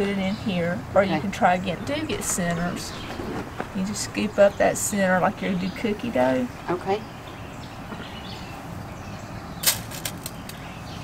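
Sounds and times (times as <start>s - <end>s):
low background noise: 0.0s - 11.0s
pebbles rattling on metal tray: 9.6s - 10.6s.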